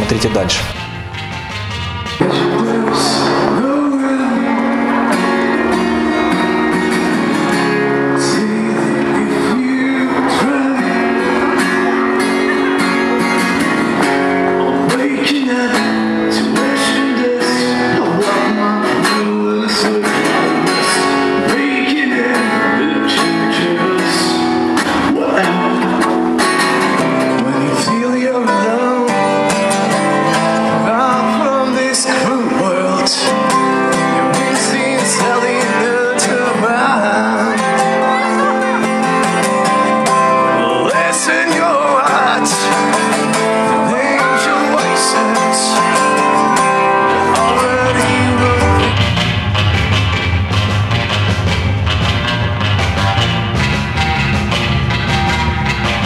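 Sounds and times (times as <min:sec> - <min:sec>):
strummed acoustic guitar: 0:00.0 - 0:56.0
man singing: 0:02.2 - 0:49.5.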